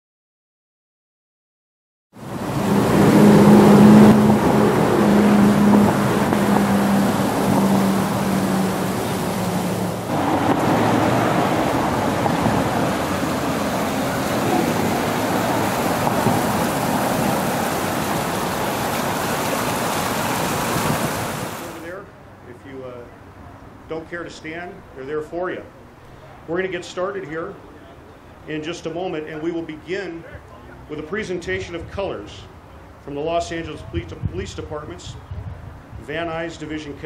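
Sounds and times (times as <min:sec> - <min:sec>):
fountain water rushing: 0:02.2 - 0:21.9.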